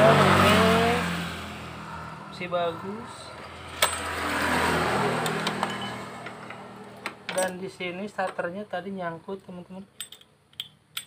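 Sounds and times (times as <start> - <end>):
scooter transmission whirring: 3.3 - 7.6.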